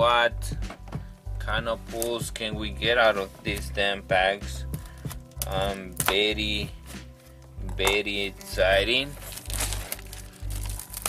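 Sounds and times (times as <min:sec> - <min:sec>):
background music with bass beat: 0:00.0 - 0:11.0
plastic shrink wrap crinkling: 0:04.8 - 0:06.1, 0:07.2 - 0:11.0.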